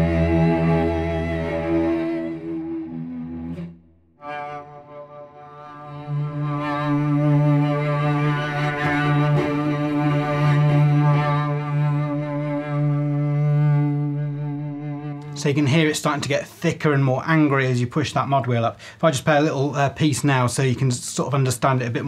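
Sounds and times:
solo cello: 0.0s - 15.9s.

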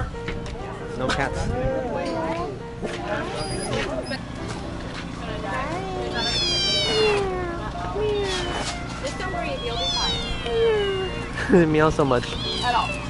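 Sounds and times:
cat meowing: 5.7s - 8.8s, 9.4s - 11.4s, 12.2s - 13.0s.

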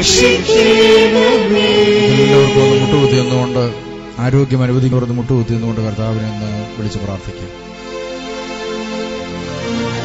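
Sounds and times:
voices singing a hymn: 0.0s - 4.6s
musical accompaniment: 0.0s - 10.0s.

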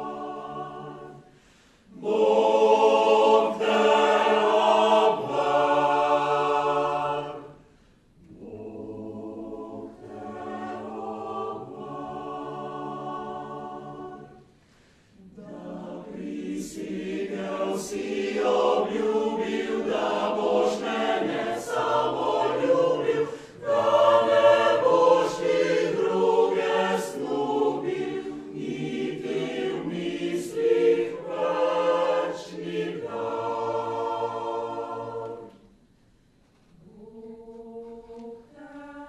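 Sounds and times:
mixed choir singing: 0.0s - 35.8s, 36.7s - 39.0s
singers breathing: 1.2s - 2.0s, 7.6s - 8.2s, 14.5s - 15.3s, 23.2s - 23.6s.

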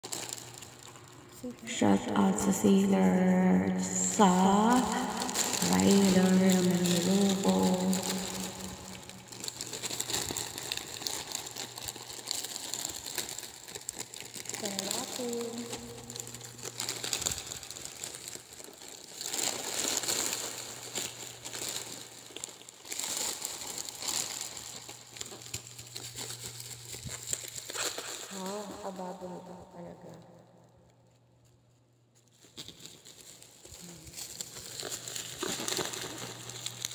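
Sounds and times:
plastic crinkling and tearing: 0.0s - 36.9s.

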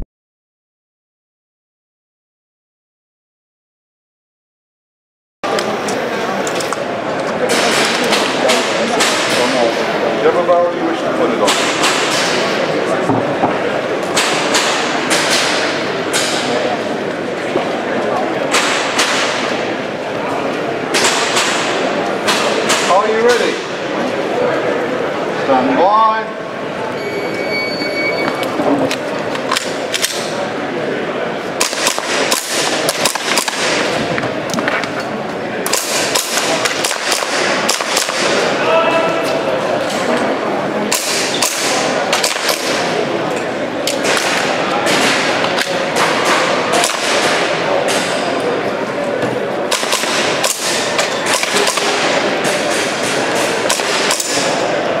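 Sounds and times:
crowd chatter: 5.4s - 55.0s
electronic timer beep: 27.0s - 28.4s
airsoft pistol shots: 31.6s - 33.9s, 35.7s - 38.4s, 40.9s - 42.9s, 49.7s - 52.8s.

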